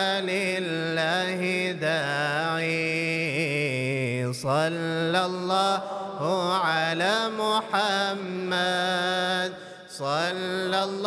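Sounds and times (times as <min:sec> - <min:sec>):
man chanting unaccompanied: 0:00.0 - 0:11.0.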